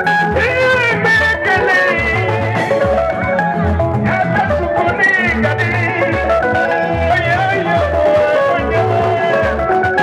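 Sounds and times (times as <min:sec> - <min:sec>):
pulsing bass line: 0:00.0 - 0:10.0
wavering melody: 0:00.0 - 0:10.0.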